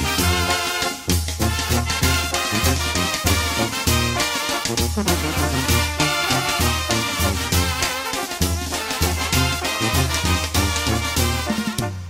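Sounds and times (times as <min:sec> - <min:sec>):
brass instruments playing melody: 0:00.0 - 0:12.0.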